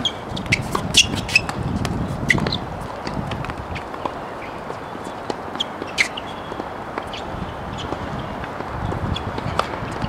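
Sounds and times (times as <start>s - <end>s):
footsteps on hard court: 0.0s - 10.0s
outdoor background noise: 0.0s - 10.0s.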